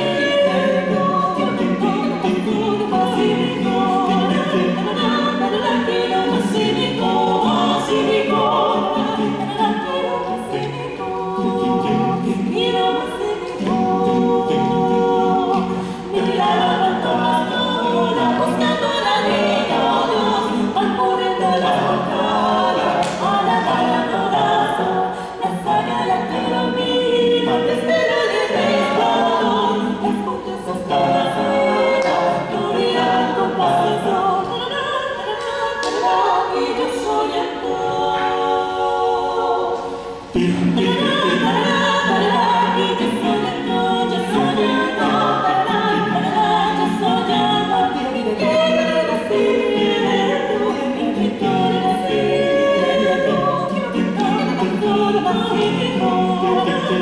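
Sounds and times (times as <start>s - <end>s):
mixed choir singing a cappella: 0.0s - 57.0s.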